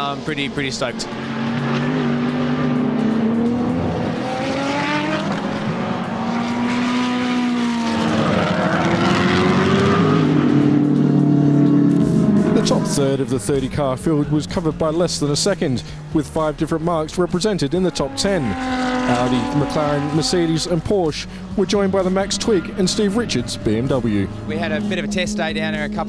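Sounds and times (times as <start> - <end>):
race car engines accelerating: 0.0 - 26.0.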